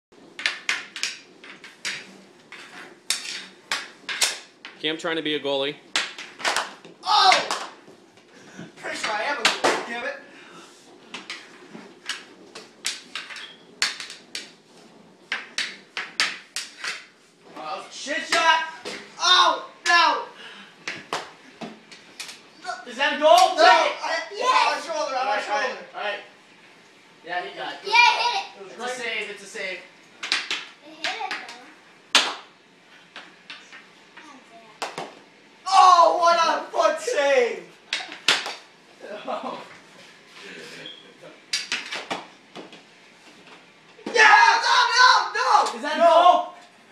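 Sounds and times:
hockey sticks clacking on tiled floor: 0:00.3 - 0:04.8, 0:05.9 - 0:07.8, 0:08.9 - 0:09.9, 0:11.1 - 0:14.6, 0:15.2 - 0:17.2, 0:30.2 - 0:32.4, 0:37.9 - 0:38.6, 0:41.5 - 0:42.8.

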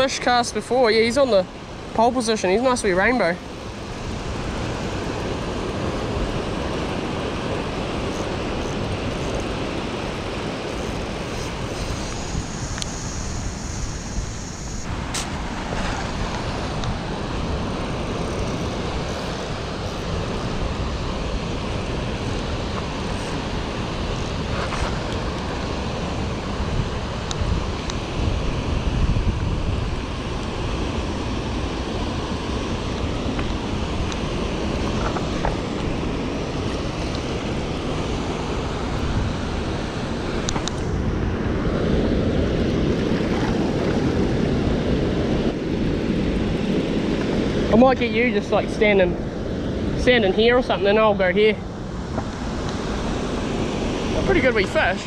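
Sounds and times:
wind on microphone: 0:00.0 - 0:55.0
white water rushing: 0:14.8 - 0:55.0.

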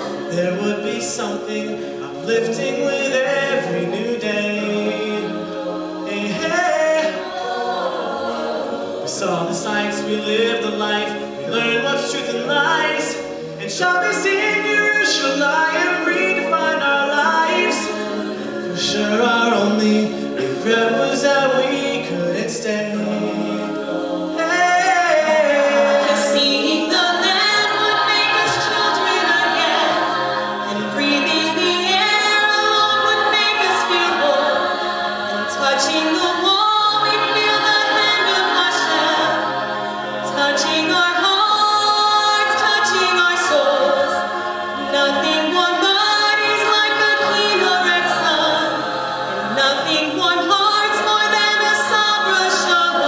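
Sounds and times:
a cappella group singing: 0:00.0 - 0:53.0.

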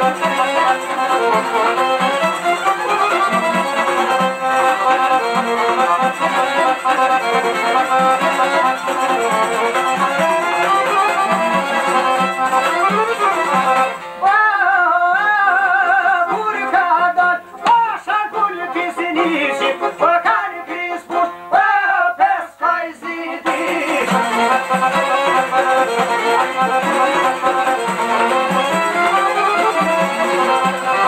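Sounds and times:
plucked lutes: 0:00.0 - 0:14.4, 0:23.4 - 0:31.0
man singing: 0:14.2 - 0:24.7.

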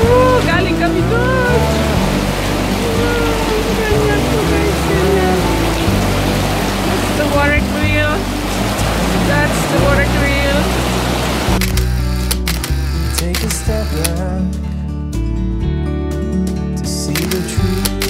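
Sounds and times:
background music with singing: 0:00.0 - 0:11.6, 0:13.1 - 0:18.0
stream water rushing: 0:00.0 - 0:14.2, 0:17.2 - 0:18.0.

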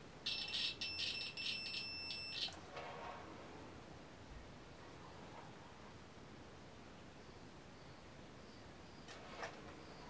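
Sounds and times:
multimeter high beep: 0:00.2 - 0:02.5.

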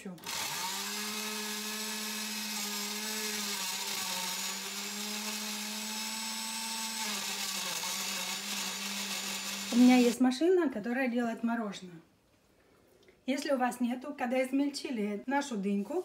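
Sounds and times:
blender motor running: 0:00.2 - 0:10.2.

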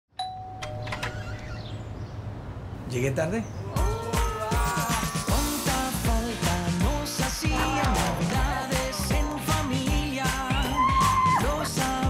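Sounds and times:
two-note doorbell chime: 0:00.1 - 0:01.1.

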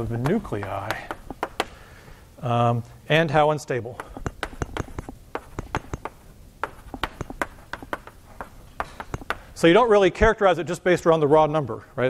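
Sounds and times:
chalk tapping on blackboard: 0:00.0 - 0:01.8, 0:04.0 - 0:09.6.

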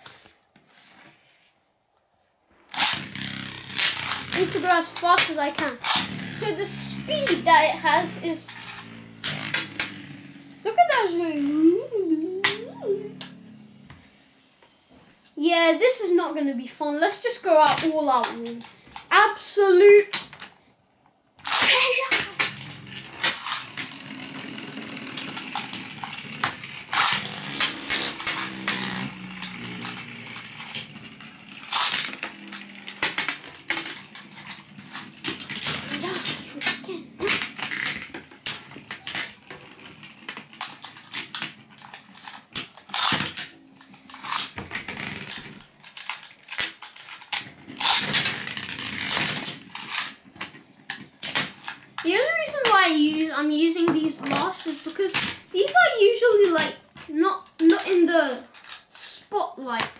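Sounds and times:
spinning tops whirring: 0:02.7 - 0:14.8, 0:21.4 - 0:59.0
spinning tops clacking: 0:02.8 - 0:13.8, 0:21.5 - 0:45.6.

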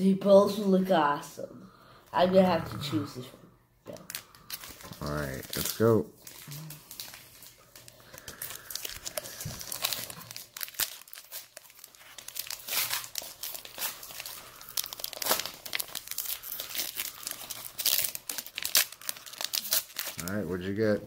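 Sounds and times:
foil wrapper crinkling and tearing: 0:03.9 - 0:21.0.

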